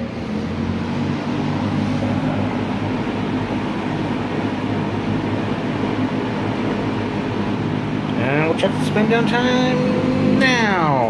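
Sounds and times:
box fan running: 0.0 - 11.0.

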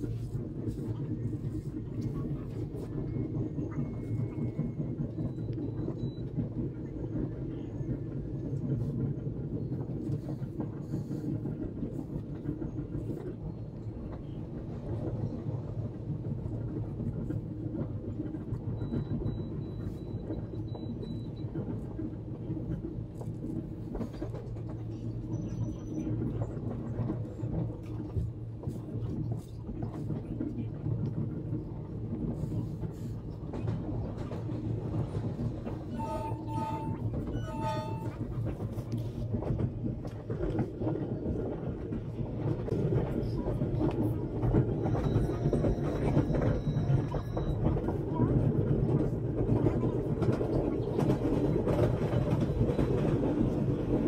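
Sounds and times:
train rumbling on rails: 0.0 - 54.0
train horn: 35.9 - 38.5.

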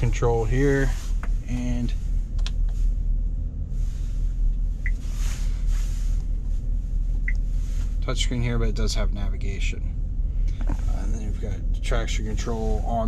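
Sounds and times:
van cabin rumble: 0.0 - 13.0.

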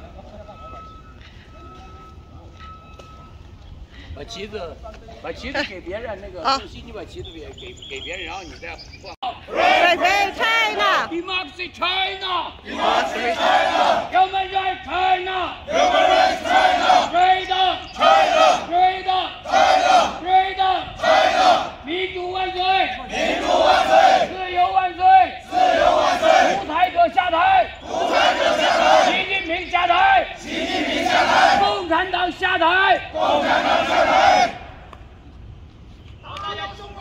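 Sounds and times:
crowd shouting in unison: 9.5 - 11.1, 12.6 - 21.9, 23.0 - 29.3, 29.9 - 31.9, 32.8 - 34.8.

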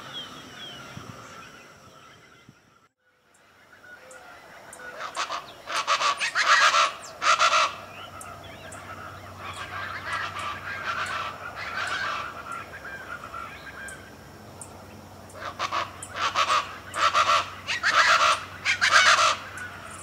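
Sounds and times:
birds making harsh repeated calls: 3.4 - 20.0.

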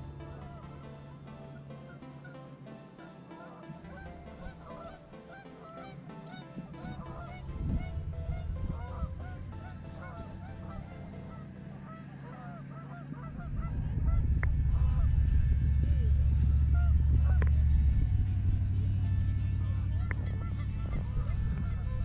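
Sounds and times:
geese honking: 0.0 - 22.0
low rumble: 6.6 - 22.0.

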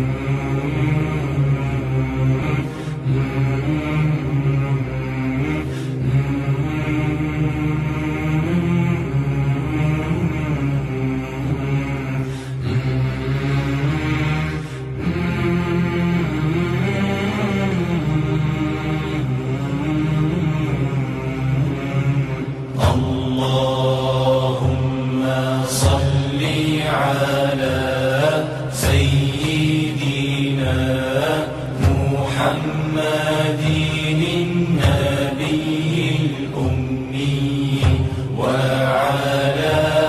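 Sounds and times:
low voices chanting slowly: 0.0 - 40.0.

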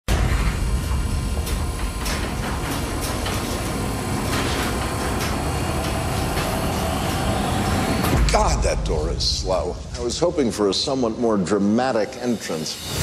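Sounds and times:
train rumble and clatter: 0.1 - 10.7.

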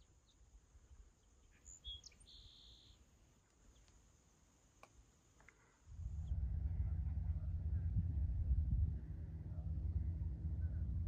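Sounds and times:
short bird chirps: 1.4 - 3.0.

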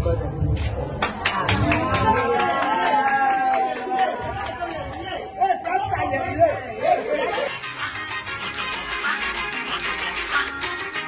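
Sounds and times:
indistinct voices and chatter: 0.0 - 11.0
upbeat music: 5.8 - 11.0.

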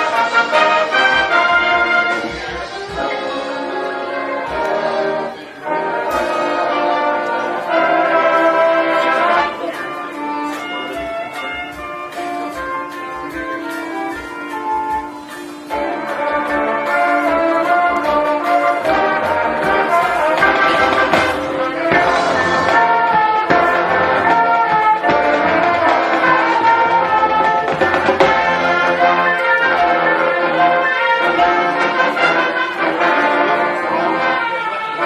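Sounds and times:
marching band brass chords: 0.0 - 35.0.

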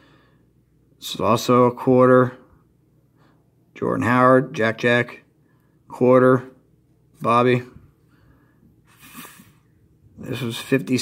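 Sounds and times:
man sniffing: 8.8 - 9.7.

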